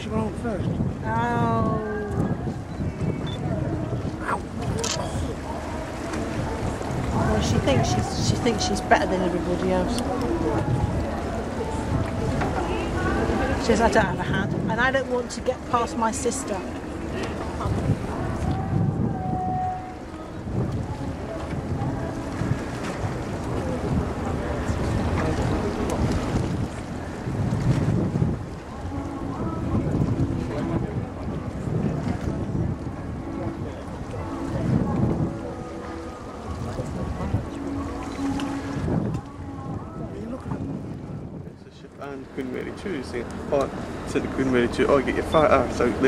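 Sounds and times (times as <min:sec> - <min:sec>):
faint voices: 0:00.0 - 0:46.0
wind buffeting microphone: 0:00.0 - 0:46.0.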